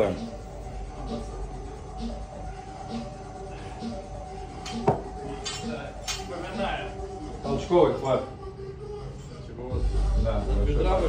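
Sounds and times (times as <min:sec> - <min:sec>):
background music with steady beat: 0:00.0 - 0:11.0
barbell clinking: 0:04.6 - 0:06.3.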